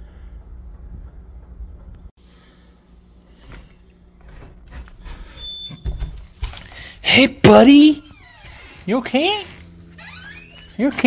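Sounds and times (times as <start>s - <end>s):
sliding door moving: 3.3s - 6.8s.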